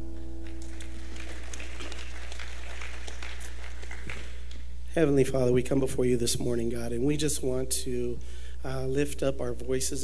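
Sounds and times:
light clapping: 0:00.4 - 0:04.7.

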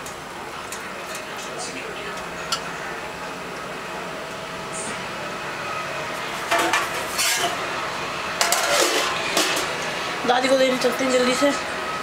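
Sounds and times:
utensils clinking and scraping: 0:06.5 - 0:07.6, 0:08.4 - 0:09.7.

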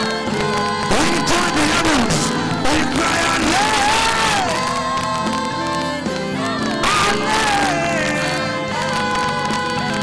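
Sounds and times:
congregation singing and shouting: 0:00.0 - 0:10.0
gospel music: 0:00.0 - 0:10.0.

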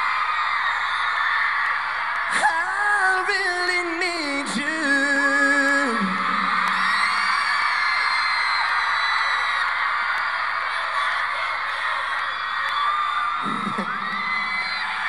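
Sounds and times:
audience screaming and cheering: 0:00.0 - 0:15.0
man singing with band: 0:02.4 - 0:06.5.

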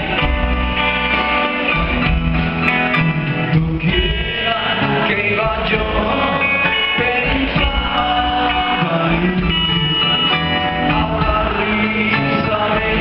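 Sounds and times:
drums: 0:00.0 - 0:13.0
electric guitar: 0:00.0 - 0:13.0
man singing: 0:03.3 - 0:13.0.

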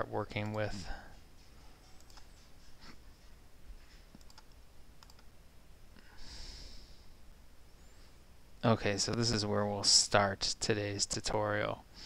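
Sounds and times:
computer mouse clicks: 0:01.8 - 0:02.5, 0:04.1 - 0:05.3.

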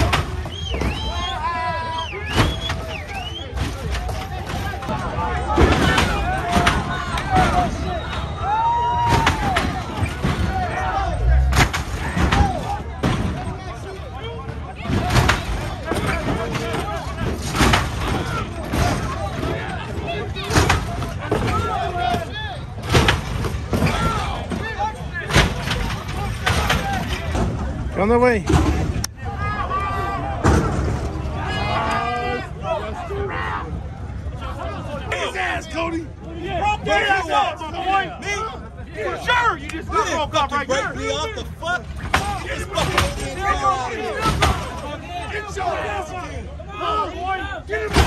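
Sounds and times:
crowd shouting and cheering: 0:00.0 - 0:48.0
cars slamming down on pavement: 0:02.2 - 0:29.0, 0:30.2 - 0:31.7, 0:47.8 - 0:48.0.

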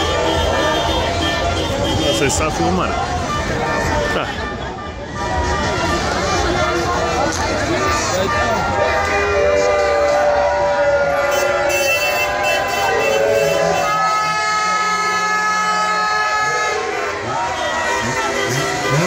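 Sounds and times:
crowd shouting and cheering: 0:00.0 - 0:19.0
horns blasting: 0:00.0 - 0:19.0.

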